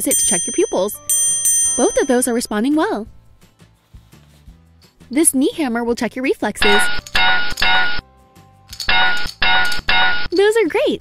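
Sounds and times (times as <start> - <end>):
toy electronic chime: 6.6 - 8.0, 8.8 - 10.3.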